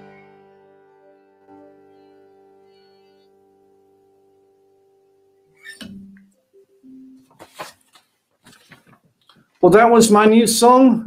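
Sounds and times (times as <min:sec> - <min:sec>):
acoustic guitar chord ringing: 0:00.0 - 0:07.3
soft guitar notes: 0:00.0 - 0:07.6.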